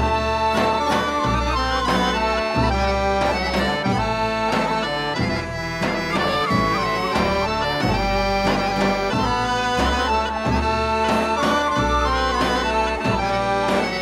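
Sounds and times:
accordion: 0.0s - 14.0s
bagpipe: 0.0s - 14.0s
drum beats: 0.0s - 14.0s.

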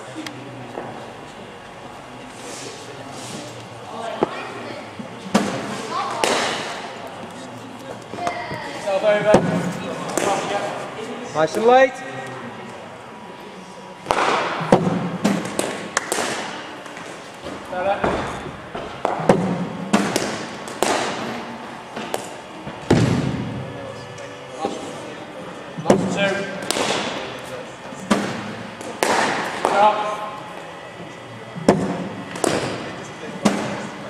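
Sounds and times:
balls thudding on hard floor: 17.4s - 21.2s.

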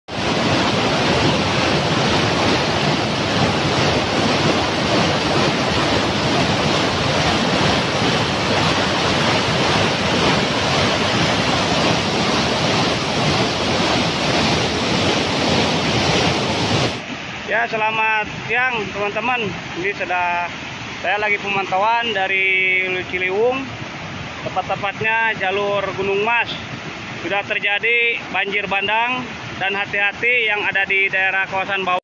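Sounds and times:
white water rushing over rocks: 0.1s - 32.0s.

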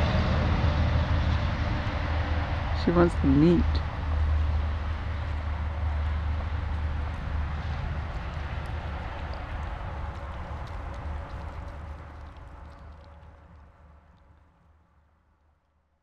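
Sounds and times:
low engine rumble: 0.0s - 15.1s.

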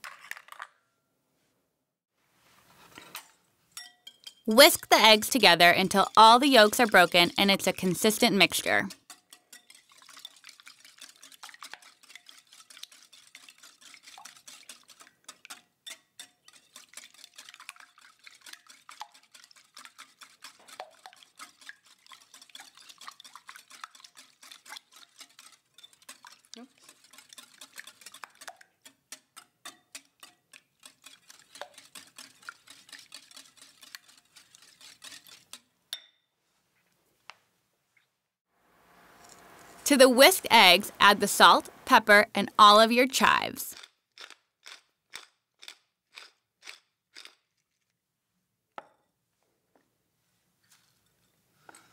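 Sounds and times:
whisk beating eggs in glass bowl: 3.8s - 35.7s.

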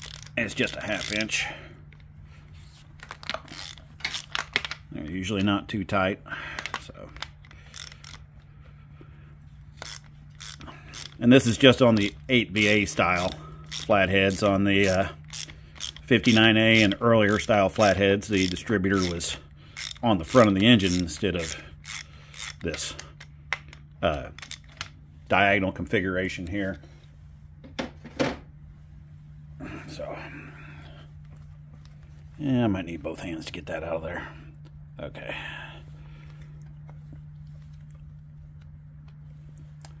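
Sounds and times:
ratchet wrench clicks and scrapes: 0.0s - 2.1s, 3.0s - 5.6s, 6.6s - 8.4s, 9.6s - 24.9s
steady low hum: 0.0s - 40.0s
socket wrench clicks: 15.2s - 17.0s
faint low hum: 21.0s - 40.0s.

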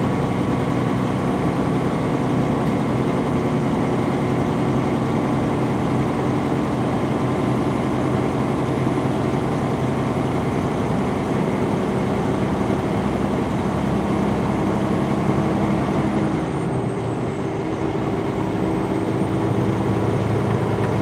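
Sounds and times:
diesel truck engine running: 0.0s - 21.0s
tyre and road noise: 0.0s - 21.0s.

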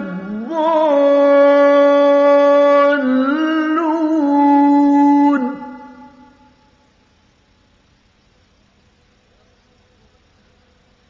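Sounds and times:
man reciting in long held note: 0.0s - 6.6s.

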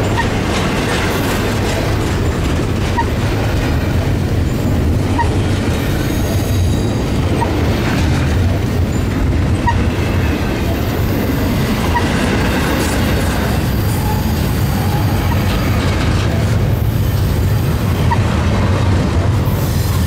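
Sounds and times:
train wheel squeak: 0.0s - 3.5s, 4.3s - 7.7s, 8.8s - 10.9s, 11.7s - 16.4s, 18.0s - 18.4s
steel wheels rumbling on rail: 0.0s - 20.0s.

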